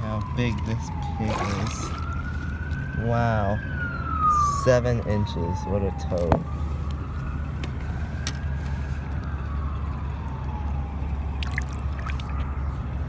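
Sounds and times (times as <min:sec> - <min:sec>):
siren wailing: 0:00.0 - 0:13.0.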